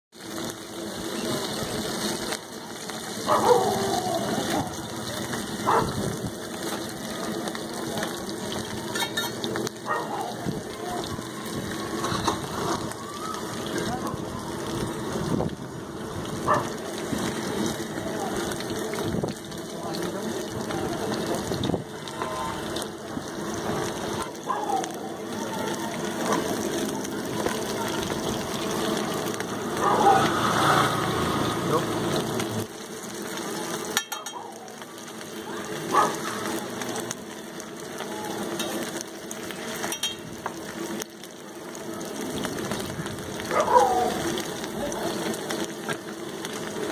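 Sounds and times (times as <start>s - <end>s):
oil sizzling on a griddle: 0.1s - 46.9s
people talking: 2.2s - 15.6s, 17.5s - 32.2s, 33.4s - 38.9s, 41.8s - 46.9s.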